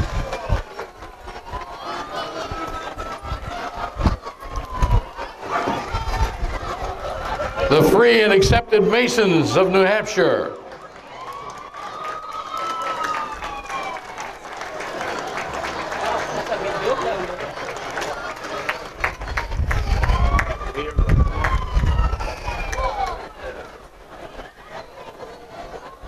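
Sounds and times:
crowd chatter: 0:00.0 - 0:26.0
siren wailing: 0:01.0 - 0:14.2, 0:19.0 - 0:23.8.

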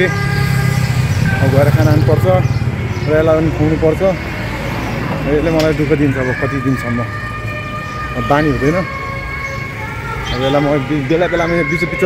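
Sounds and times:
street traffic noise: 0:00.0 - 0:12.0
man talking: 0:01.4 - 0:02.5, 0:05.2 - 0:07.2, 0:08.2 - 0:08.9, 0:10.3 - 0:12.0.

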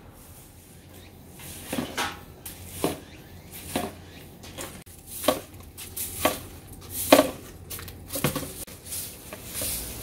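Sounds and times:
broom sweeping leaves on dirt: 0:00.0 - 0:10.0.

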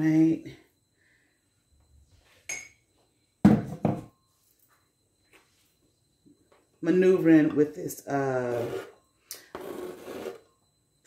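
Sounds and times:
kitchenware clink: 0:02.5 - 0:02.8.

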